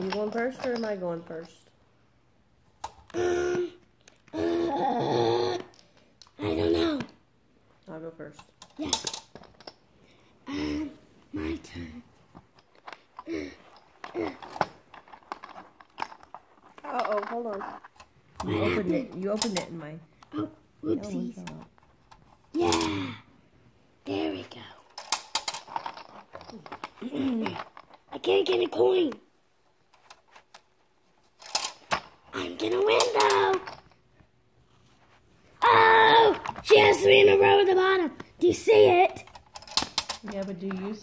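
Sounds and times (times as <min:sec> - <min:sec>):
plastic checkers clicking: 0:00.0 - 0:01.6, 0:08.4 - 0:09.8, 0:12.5 - 0:19.8, 0:24.7 - 0:29.2, 0:31.4 - 0:32.0, 0:32.6 - 0:34.0, 0:38.4 - 0:41.0.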